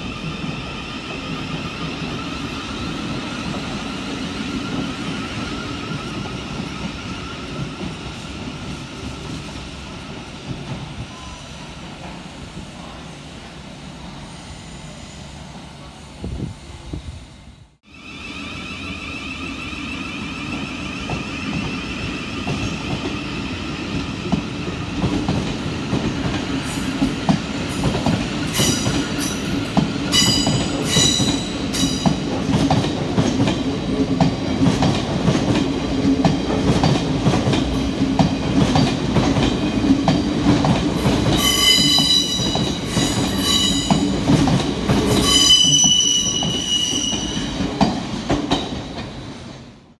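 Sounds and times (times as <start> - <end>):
train wheels squealing: 0.0 - 9.1, 11.1 - 11.8, 14.3 - 15.4, 17.9 - 24.9, 28.5 - 32.3, 41.0 - 44.3, 45.0 - 47.8
train humming: 0.0 - 49.9.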